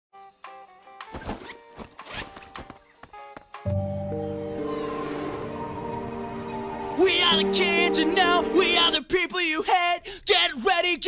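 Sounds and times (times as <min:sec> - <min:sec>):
backpack zipper rasps: 0:01.1 - 0:02.8
loud music: 0:03.7 - 0:09.0.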